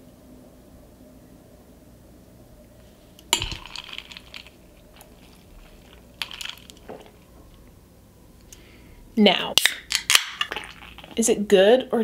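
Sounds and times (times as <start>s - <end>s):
glass clattering: 3.3s - 7.3s, 10.0s - 11.2s
glass clinking: 3.4s - 7.2s
straw rattling in glass: 3.4s - 7.3s, 10.0s - 11.2s.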